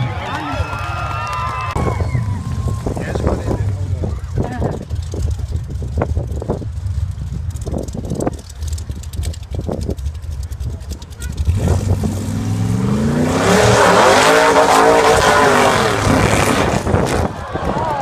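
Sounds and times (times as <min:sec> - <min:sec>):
buggy engine revving: 0:00.0 - 0:18.0.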